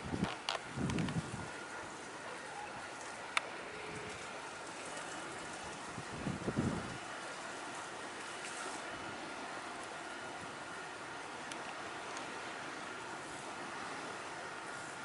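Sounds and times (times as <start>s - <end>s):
faint high whine: 0.0s - 15.0s.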